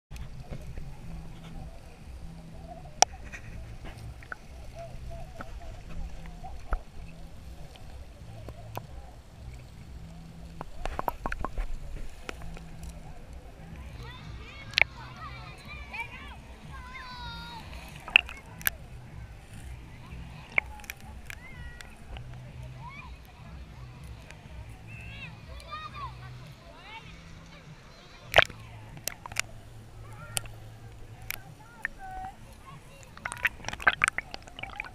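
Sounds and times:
water clicking against camera case: 0:00.1 - 0:22.5, 0:28.3 - 0:34.9
muffled underwater rumble: 0:00.1 - 0:27.6, 0:28.2 - 0:34.9
sharp clicks: 0:33.0 - 0:34.9
short warbling tones: 0:33.2 - 0:34.9.

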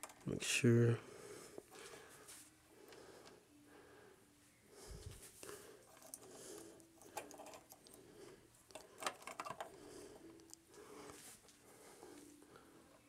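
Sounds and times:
plastic figure joints clicking: 0:08.7 - 0:09.8.

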